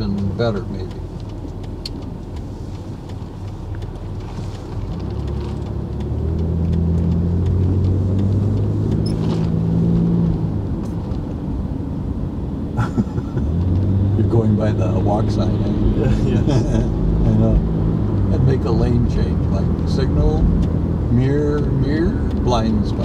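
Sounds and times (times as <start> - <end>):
car engine accelerating: 0.0 - 23.0
road noise: 0.0 - 23.0.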